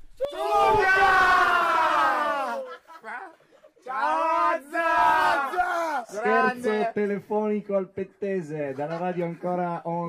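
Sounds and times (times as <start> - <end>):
people yelling together: 0.2 - 6.9.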